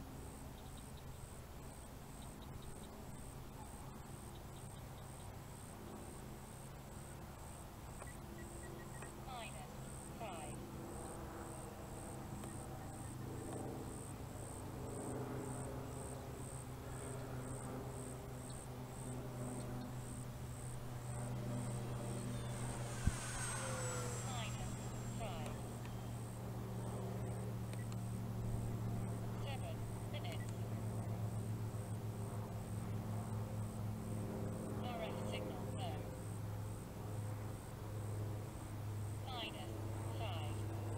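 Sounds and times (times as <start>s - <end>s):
model plane motor and propeller drone: 0.0s - 40.9s.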